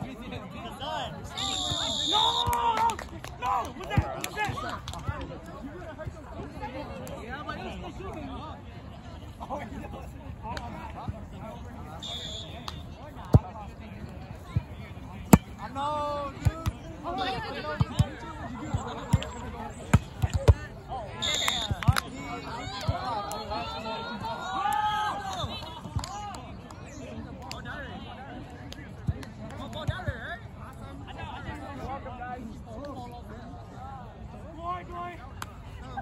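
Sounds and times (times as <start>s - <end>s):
chatter of players: 0.0s - 36.0s
volleyball smacks: 15.3s - 15.6s
soft volleyball hit: 15.3s - 15.7s.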